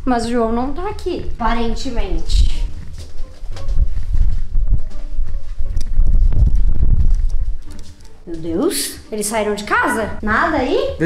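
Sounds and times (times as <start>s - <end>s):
footsteps on hard floor: 2.0s - 8.9s
camera handling rumble: 2.8s - 8.2s.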